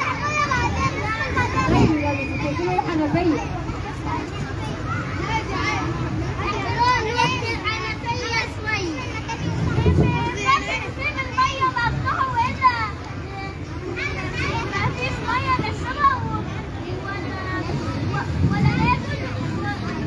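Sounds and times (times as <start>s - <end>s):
children calling out: 0.0s - 20.0s.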